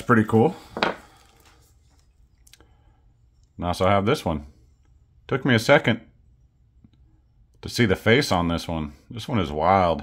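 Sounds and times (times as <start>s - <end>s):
faint clicks of pewter pieces: 1.2s - 3.6s.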